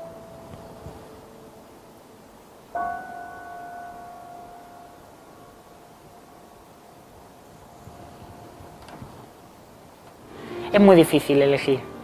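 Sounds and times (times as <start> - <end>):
grand piano playing slow notes: 0.0 - 8.7.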